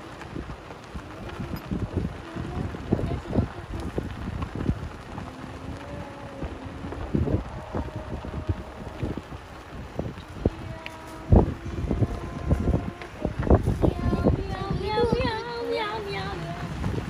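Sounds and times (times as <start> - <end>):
cart rumbling and knocking: 0.0 - 17.0
wind buffeting microphone: 0.0 - 17.0.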